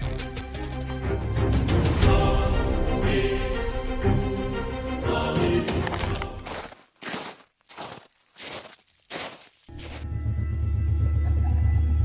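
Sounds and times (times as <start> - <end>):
deep rumbling music drone: 10.0 - 12.0.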